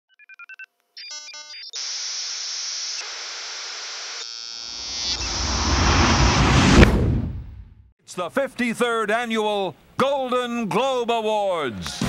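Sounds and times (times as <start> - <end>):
static hiss: 1.8 - 5.3
low rumble into whoosh: 4.8 - 7.8.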